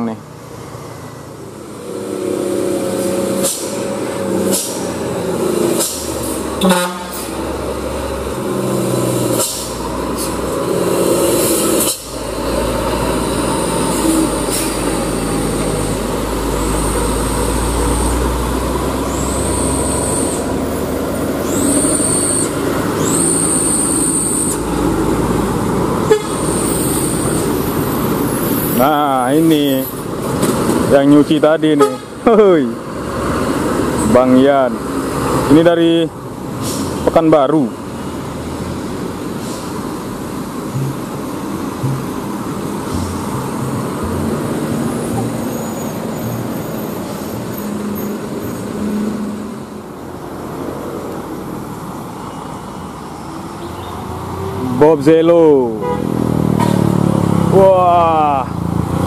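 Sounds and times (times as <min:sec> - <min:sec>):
diesel truck engines rumbling: 0:00.0 - 0:59.0
traffic passing: 0:00.0 - 0:59.0
vehicle horn toots: 0:06.6 - 0:07.4, 0:26.0 - 0:26.5, 0:31.7 - 0:32.2, 0:55.7 - 0:56.1.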